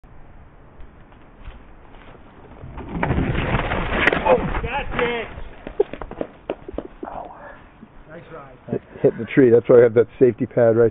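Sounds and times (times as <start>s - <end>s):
bike crash knocks: 2.6s - 6.7s.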